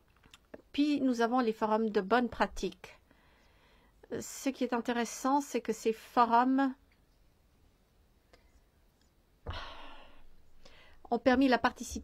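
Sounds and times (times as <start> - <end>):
person breathing close to microphone: 3.0 - 4.0, 9.4 - 11.1.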